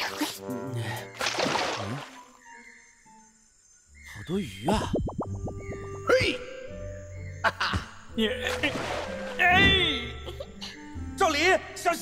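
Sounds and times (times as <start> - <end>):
faint soft background music: 0.0 - 12.0.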